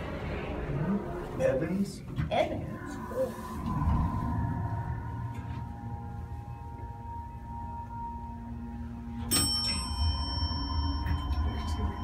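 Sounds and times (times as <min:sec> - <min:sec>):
elevator pump humming: 0:00.0 - 0:12.0
elevator chime: 0:03.0 - 0:12.0.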